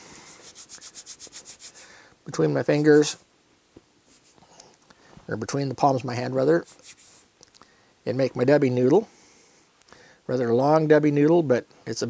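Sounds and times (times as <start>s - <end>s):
hands rubbing: 0.0s - 2.0s, 4.0s - 4.8s, 6.6s - 7.3s.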